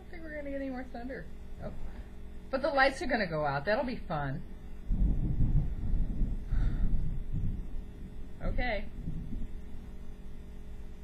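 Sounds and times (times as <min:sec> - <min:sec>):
thunder rumbling: 0:04.8 - 0:10.2.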